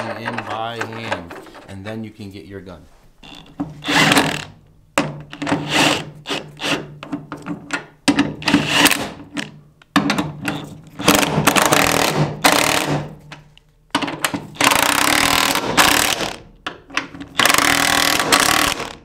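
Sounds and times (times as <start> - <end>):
impact wrench hammering: 9.9 - 13.2, 14.0 - 19.0.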